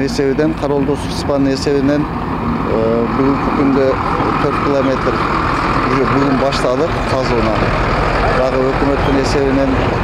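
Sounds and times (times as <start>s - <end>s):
man speaking: 0.0s - 9.9s
heavy vehicle engine droning: 0.0s - 10.0s.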